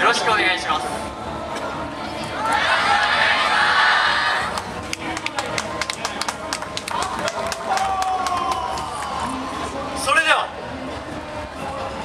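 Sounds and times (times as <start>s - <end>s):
audience applause: 4.9s - 9.2s.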